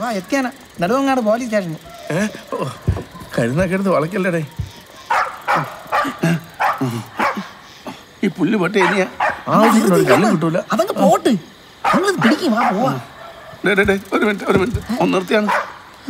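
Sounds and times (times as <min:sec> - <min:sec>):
men's voices: 0:00.0 - 0:16.0
dog barking: 0:04.9 - 0:07.6, 0:08.8 - 0:10.4, 0:11.8 - 0:13.8, 0:14.8 - 0:15.9.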